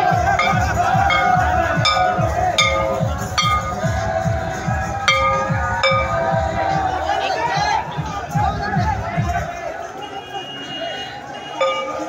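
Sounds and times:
music with fast drumbeat: 0:00.0 - 0:09.6
metal bell struck: 0:00.4 - 0:03.9, 0:05.1 - 0:06.2, 0:11.6 - 0:12.0.

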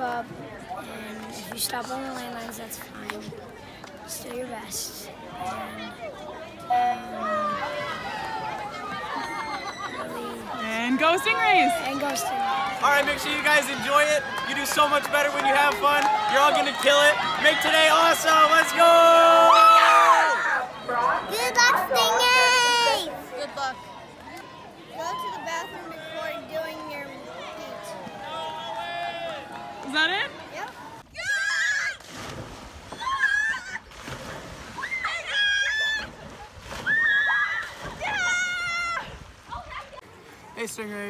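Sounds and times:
girls shrieking: 0:07.2 - 0:10.3, 0:31.1 - 0:32.0, 0:32.9 - 0:33.9, 0:34.8 - 0:36.1, 0:36.8 - 0:39.1
children shouting a cheer: 0:18.6 - 0:23.1, 0:24.4 - 0:29.8
child talking: 0:21.2 - 0:23.1, 0:25.0 - 0:28.0
water splashing: 0:29.5 - 0:41.0.

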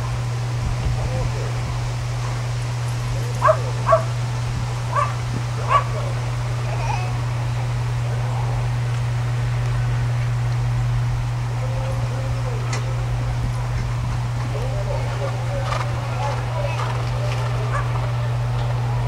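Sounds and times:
steady low hum: 0:00.0 - 0:19.0
dog yipping: 0:03.2 - 0:04.2, 0:04.9 - 0:06.1, 0:14.5 - 0:18.0.

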